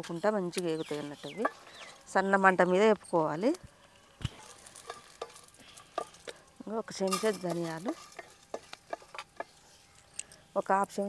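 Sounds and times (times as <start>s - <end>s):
spatula scraping metal pan: 4.0s - 6.4s, 7.0s - 9.9s.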